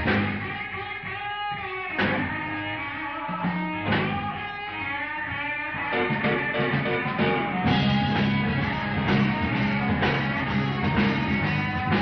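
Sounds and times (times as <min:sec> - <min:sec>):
blues-rock band playing: 0:00.0 - 0:12.0
electric guitar lead notes: 0:01.9 - 0:12.0.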